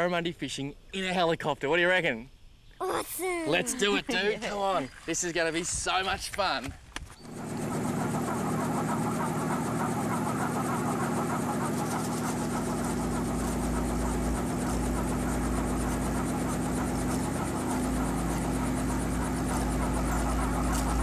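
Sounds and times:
helicopter engine and rotor hum: 0:07.2 - 0:21.0.

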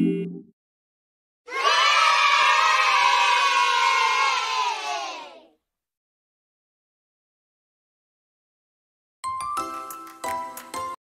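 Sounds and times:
children cheering: 0:01.5 - 0:05.5.

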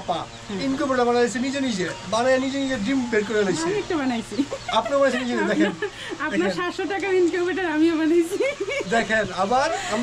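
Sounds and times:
chickens clucking: 0:01.7 - 0:10.0.

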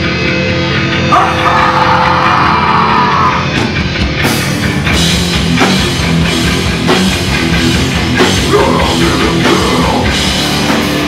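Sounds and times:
bass guitar: 0:00.0 - 0:11.0
distorted guitar: 0:00.0 - 0:11.0
drums: 0:00.0 - 0:11.0
vocalist screaming: 0:01.1 - 0:03.6.

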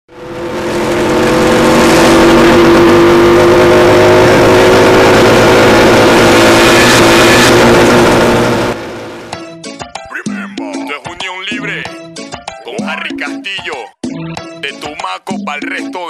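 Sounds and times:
small motorcycle engines running hard: 0:00.1 - 0:09.3.

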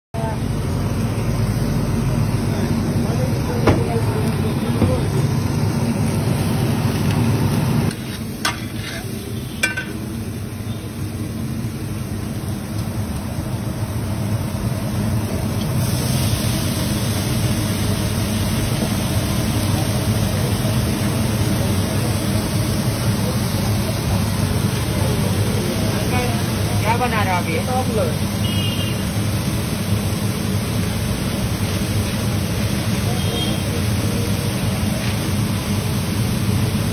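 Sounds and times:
street stall background rumble: 0:00.1 - 0:36.9
vegetables frying on iron griddle: 0:00.2 - 0:36.9.

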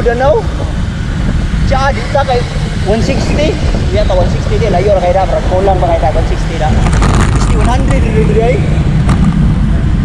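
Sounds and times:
man's voice: 0:00.0 - 0:00.5, 0:07.4 - 0:08.8
wind buffeting microphone: 0:00.0 - 0:10.0.

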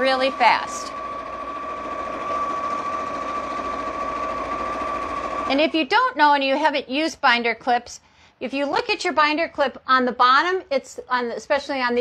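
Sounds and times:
sewing machine stitching: 0:00.0 - 0:05.8.

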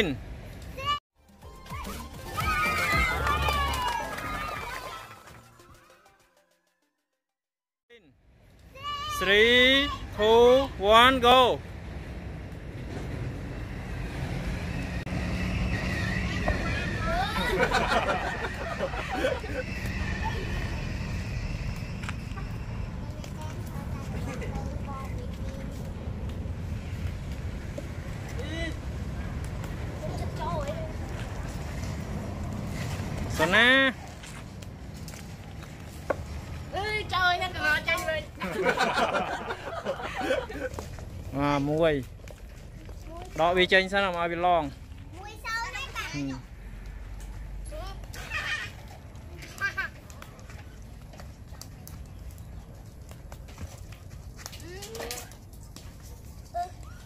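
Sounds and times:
children calling: 0:01.7 - 0:05.4, 0:15.4 - 0:25.4, 0:47.7 - 0:50.3
steady low rumble: 0:17.8 - 0:38.5.

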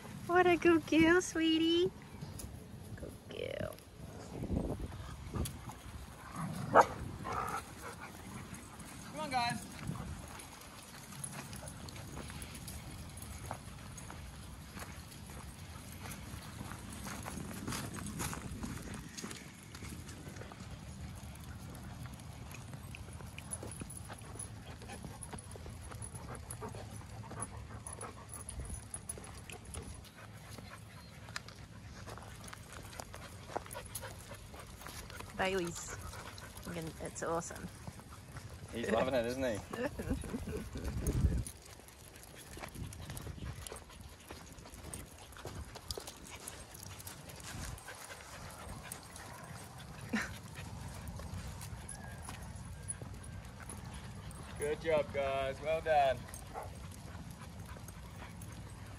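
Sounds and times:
paws and footsteps pattering: 0:00.0 - 0:58.9.

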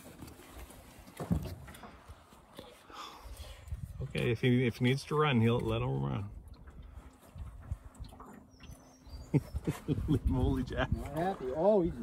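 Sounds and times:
man laughing: 0:09.3 - 0:10.9.

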